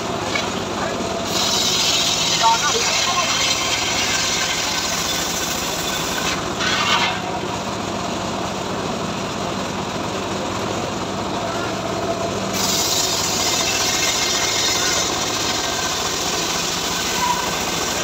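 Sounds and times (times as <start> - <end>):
saw blade cutting log: 0.0 - 7.6, 12.5 - 18.0
engine running: 0.0 - 18.0.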